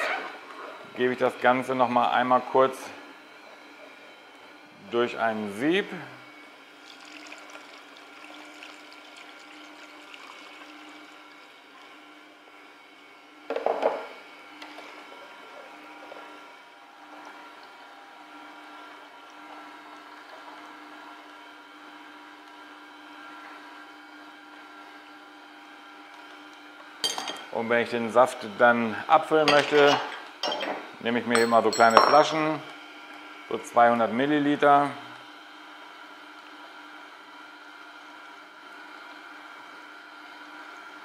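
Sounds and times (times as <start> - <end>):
juicer motor humming: 0.0 - 41.0
juice trickling through sieve: 6.6 - 12.5.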